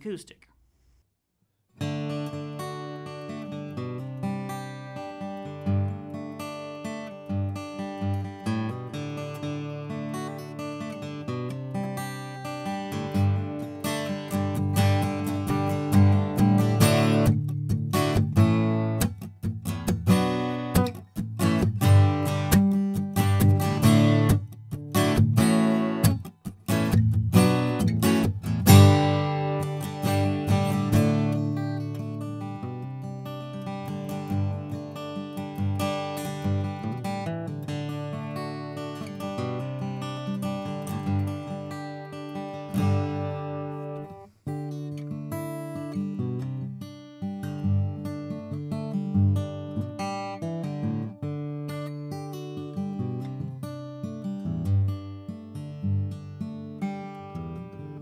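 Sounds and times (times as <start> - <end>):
acoustic guitar strumming: 1.8 - 58.0.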